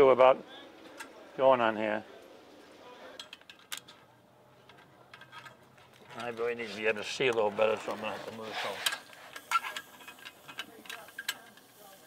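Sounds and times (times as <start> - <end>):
light metallic clicks of tools: 8.8 - 11.8.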